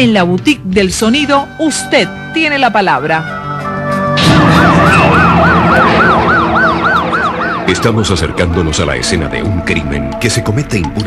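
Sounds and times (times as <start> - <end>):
siren yelp wail: 4.1 - 9.0
steady low drone: 4.1 - 9.7.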